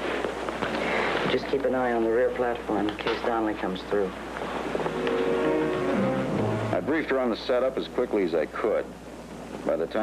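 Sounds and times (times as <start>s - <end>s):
steady held tones: 4.8s - 7.4s.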